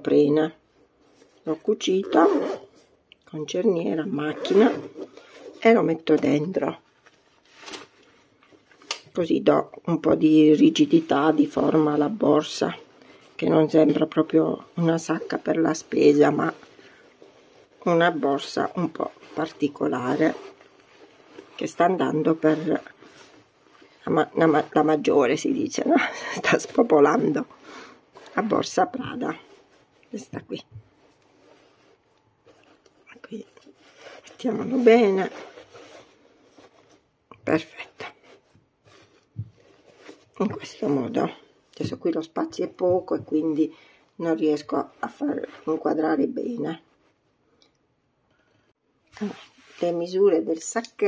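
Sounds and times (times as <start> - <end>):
fabric rustling: 0.4 - 51.0
hands rustling a net bag: 30.8 - 33.0.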